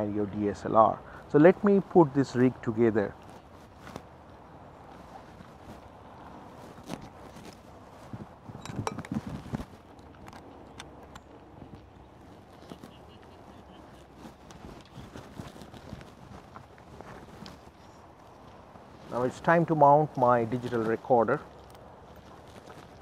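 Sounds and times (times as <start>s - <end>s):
camera gear clicks and knocks: 8.5s - 11.9s.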